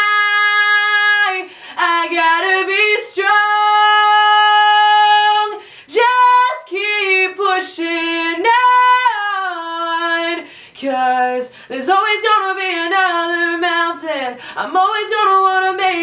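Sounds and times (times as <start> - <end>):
woman singing unaccompanied: 0.0 - 16.0.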